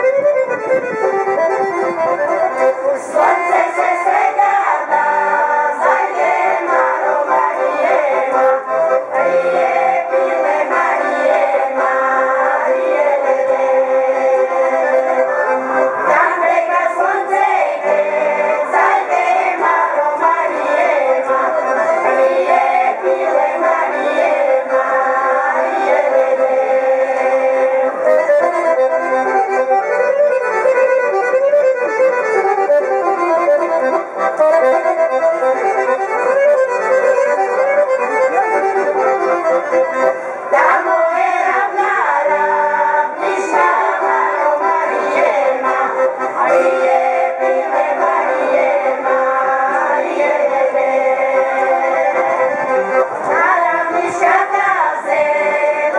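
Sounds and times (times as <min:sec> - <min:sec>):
accordion: 0:00.0 - 0:55.9
women singing folk song together: 0:02.8 - 0:28.2, 0:40.4 - 0:55.9.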